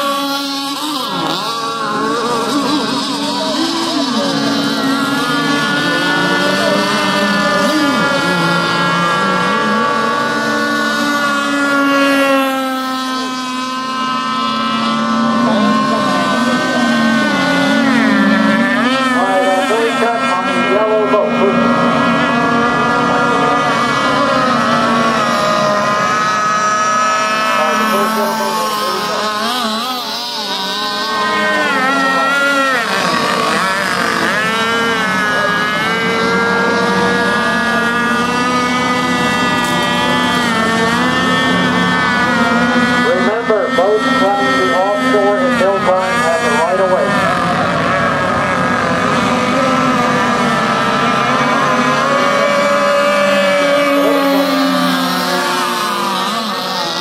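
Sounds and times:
model boat engine high-pitched: 0.0 - 57.0.

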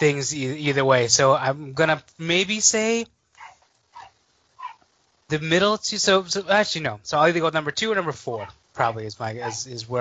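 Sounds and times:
dog barking faintly: 3.4 - 4.9, 8.3 - 8.6, 9.4 - 9.8.

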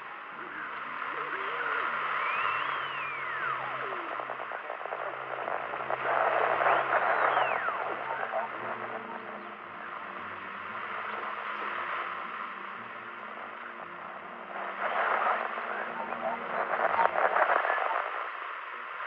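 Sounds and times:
radio static hiss and crackle: 0.0 - 19.0
whistling radio tones: 0.0 - 19.0.

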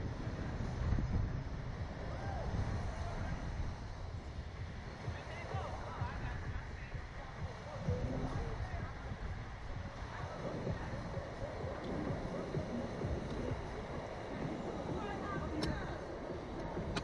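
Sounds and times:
faint voices: 0.0 - 17.0
wind buffeting microphone: 0.0 - 17.0.

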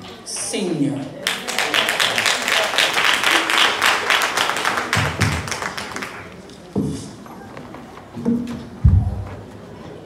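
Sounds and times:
congregation applauding: 1.2 - 6.5
low thumps: 8.8 - 9.5.

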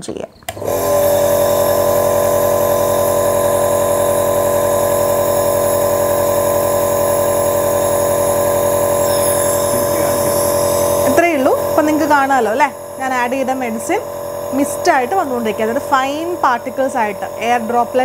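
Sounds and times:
nebulizer compressor buzzing hum: 0.4 - 18.0.

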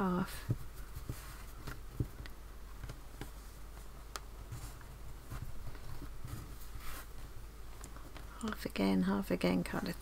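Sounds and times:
fabric rustling and tapping: 0.4 - 8.3.

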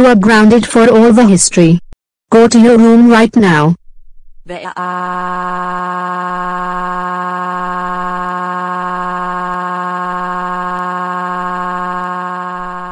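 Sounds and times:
synthetic voice wailing: 4.5 - 12.9.

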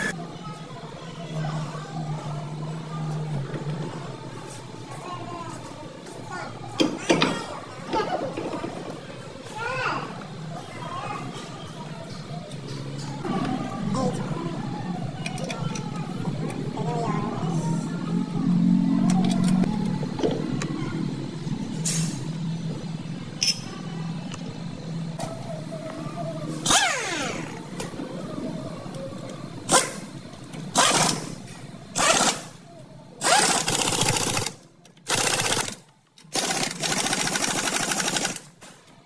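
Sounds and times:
engine droning: 12.8 - 34.7.

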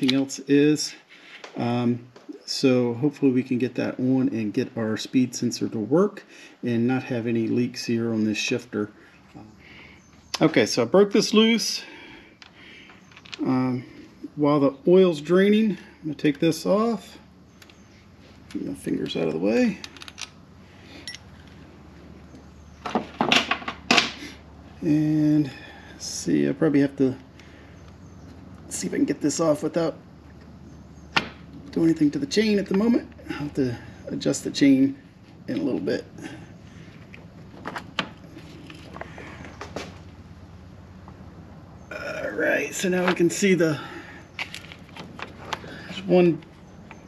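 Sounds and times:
quiet handling noise: 0.0 - 0.4, 7.0 - 11.5, 12.3 - 14.3, 16.2 - 24.2, 26.3 - 41.6, 42.5 - 47.0
low steady hum: 0.0 - 47.0
metal motorcycle parts clinking: 12.4 - 13.5.

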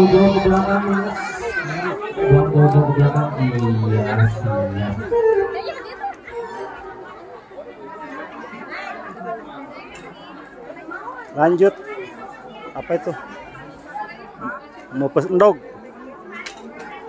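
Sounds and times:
man holding a long note: 0.0 - 6.7
people chattering: 0.0 - 17.0.

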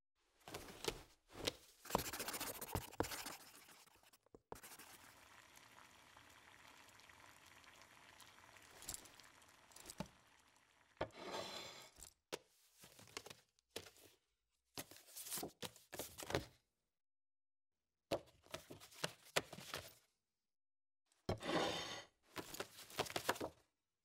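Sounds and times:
paper cards rustling and clicking: 22.4 - 23.6.

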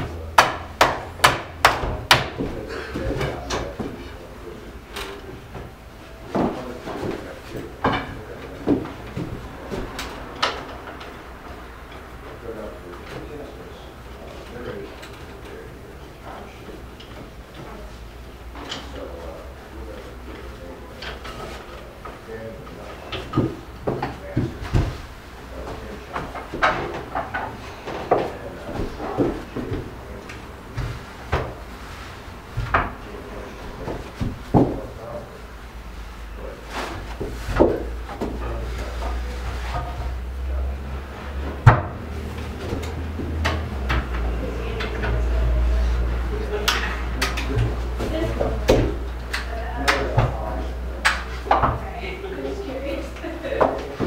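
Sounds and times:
wooden knocks and clunks: 0.0 - 4.1, 5.3 - 11.2, 22.8 - 31.8, 32.5 - 33.1, 33.7 - 35.0, 37.0 - 39.1, 41.3 - 45.4.

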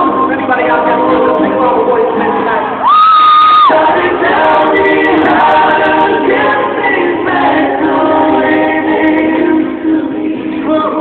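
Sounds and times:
vocal group singing in harmony: 0.0 - 11.0.

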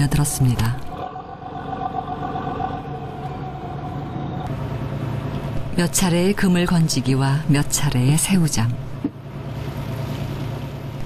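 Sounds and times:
higher steady tone: 0.0 - 7.4
boat engine humming: 0.0 - 11.0.

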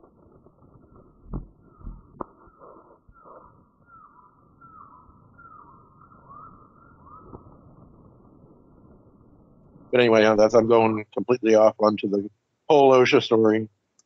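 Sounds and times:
faint forest background: 0.0 - 14.0
bird short falling calls: 1.6 - 7.6.

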